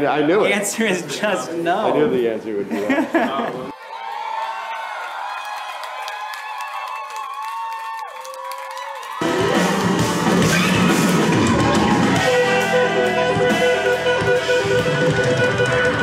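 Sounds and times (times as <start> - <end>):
crowd noise: 0.0 - 16.0
live rock band music: 9.2 - 16.0.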